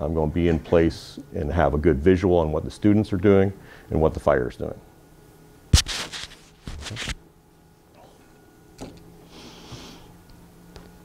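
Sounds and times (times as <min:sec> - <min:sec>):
faint steady hum: 0:00.0 - 0:11.0
clothing rustling: 0:05.8 - 0:07.2.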